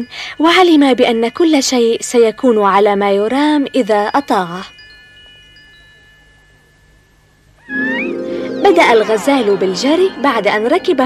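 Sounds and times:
faint bell-like chime tones: 0:04.1 - 0:11.0.

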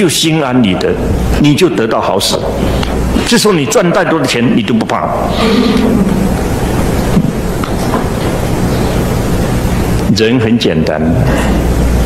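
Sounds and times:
loud rushing noise with low rumble: 0:00.5 - 0:03.7, 0:05.0 - 0:10.1.

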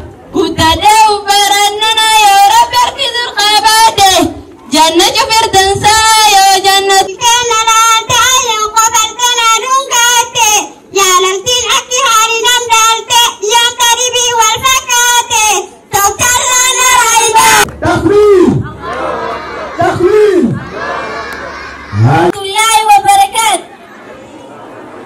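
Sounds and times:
crowd noise: 0:00.0 - 0:25.0.

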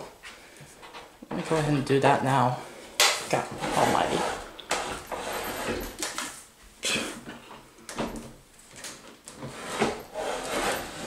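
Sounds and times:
closet door scraping: 0:00.0 - 0:02.0, 0:03.2 - 0:11.0.

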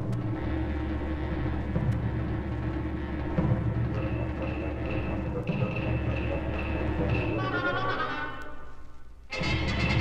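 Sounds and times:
drum strokes: 0:00.0 - 0:07.8.

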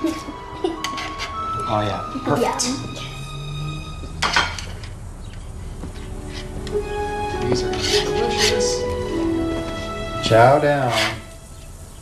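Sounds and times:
dishes clattering: 0:00.0 - 0:01.8, 0:04.0 - 0:06.8.

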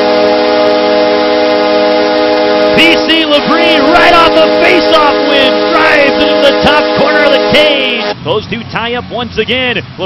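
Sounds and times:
goal horn blaring: 0:00.0 - 0:08.2
crowd cheering: 0:02.6 - 0:08.1.

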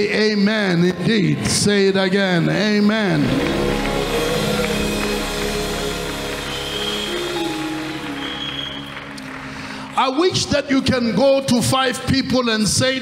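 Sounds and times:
held chords: 0:03.1 - 0:09.9
electric bass guitar: 0:03.2 - 0:09.4.

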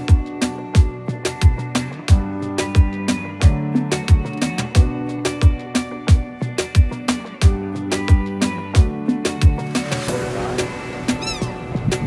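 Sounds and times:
background music with steady beat: 0:00.0 - 0:12.0
gull call: 0:11.1 - 0:11.7.

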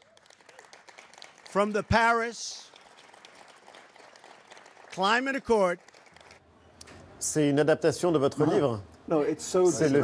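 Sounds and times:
faint audience applause: 0:00.0 - 0:06.4.

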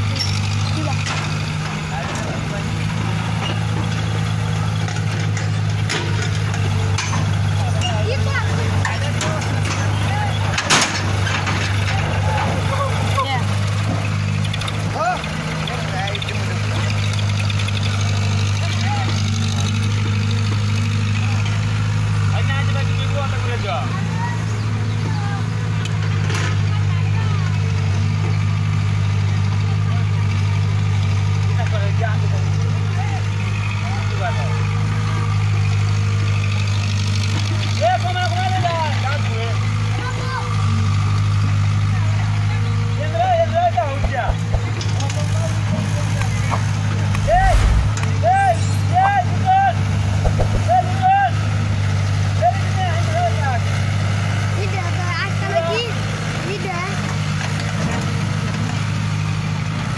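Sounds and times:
excavator diesel engine droning: 0:00.0 - 0:31.6, 0:39.5 - 0:59.9.

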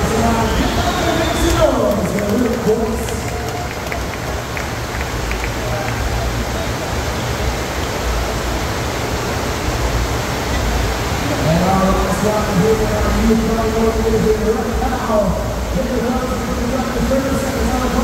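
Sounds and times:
rushing water sheet: 0:00.0 - 0:18.0.

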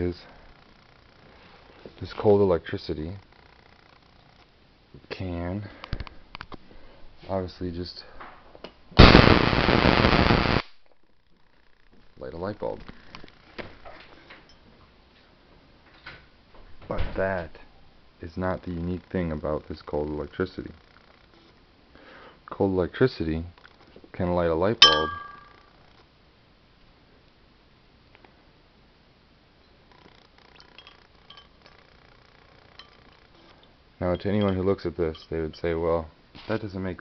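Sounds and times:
glass pitcher handling: 0:24.8 - 0:25.5
small sharp glass clinks: 0:24.8 - 0:25.7, 0:30.5 - 0:31.8, 0:32.7 - 0:35.7.

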